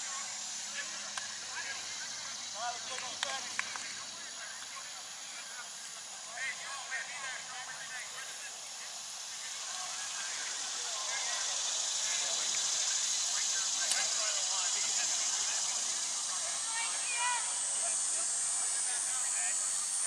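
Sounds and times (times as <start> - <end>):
steady high hiss: 0.0 - 20.0.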